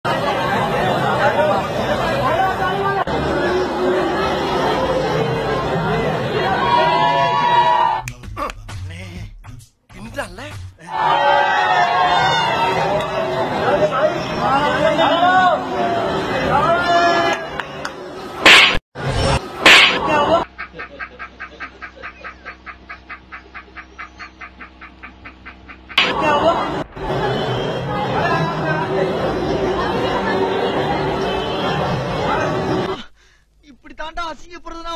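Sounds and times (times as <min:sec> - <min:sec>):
crowd chatter: 0:00.1 - 0:07.9, 0:10.9 - 0:20.5, 0:26.0 - 0:33.1
man laughing hysterically: 0:20.4 - 0:26.0.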